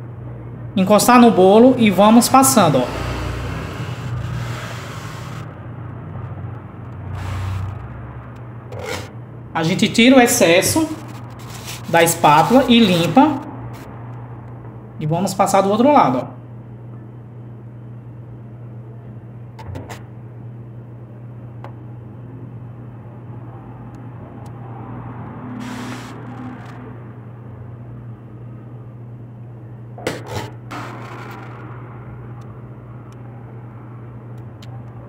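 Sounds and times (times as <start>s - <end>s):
steady low hum: 0.0s - 35.0s
cake comb scraping cream: 10.9s - 13.3s.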